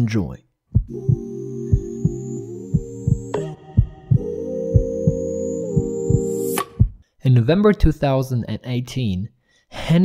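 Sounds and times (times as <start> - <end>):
heartbeat-like thump: 0.7 - 7.0
synthesizer chord: 0.9 - 6.8
thin high rising tone: 1.0 - 6.7.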